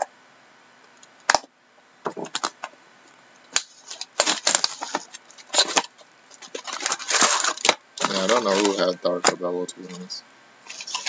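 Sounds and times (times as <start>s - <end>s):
plastic wrap crinkling: 2.2s - 2.7s, 3.5s - 11.0s.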